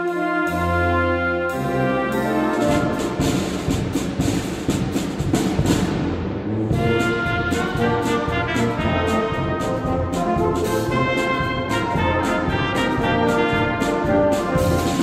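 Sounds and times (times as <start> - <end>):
steady drum beat: 0.0 - 15.0
wind band playing: 0.0 - 15.0.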